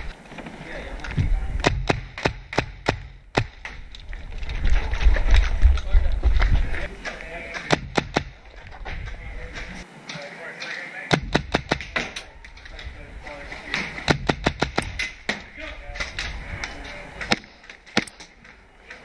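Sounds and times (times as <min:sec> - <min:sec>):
airsoft rifle shots: 0:11.1 - 0:12.2.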